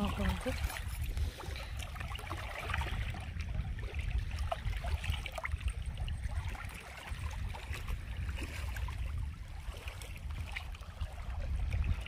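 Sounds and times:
water lapping over pebbles: 0:00.0 - 0:12.0
water trickles and splashes: 0:00.0 - 0:12.0
wind noise on microphone: 0:00.0 - 0:12.0.

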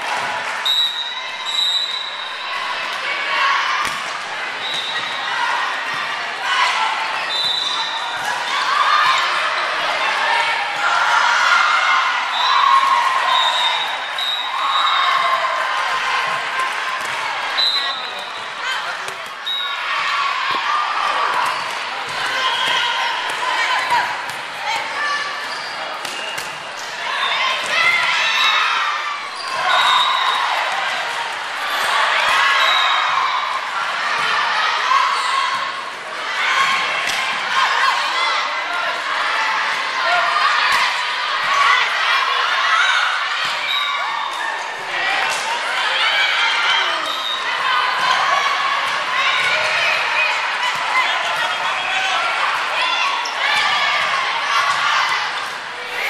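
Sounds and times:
people calling and shouting: 0:00.0 - 0:56.0
shoes squeaking on court: 0:25.2 - 0:27.4.

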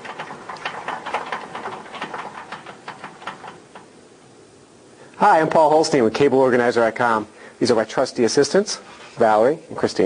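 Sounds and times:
metal rack rattling on casters: 0:00.0 - 0:04.0.

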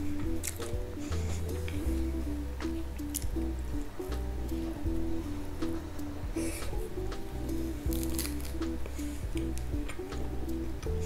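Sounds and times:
background music with deep bass: 0:00.0 - 0:11.0
pizza cheese squishing: 0:07.7 - 0:11.0.

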